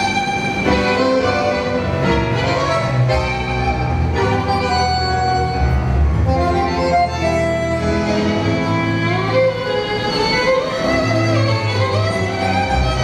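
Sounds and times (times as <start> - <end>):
tango orchestra music: 0.0 - 13.0
violins with sliding notes: 0.0 - 13.0.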